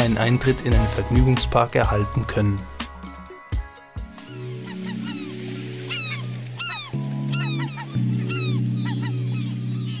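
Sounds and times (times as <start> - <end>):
background music chords: 0.0 - 10.0
seagull cries: 4.1 - 10.0.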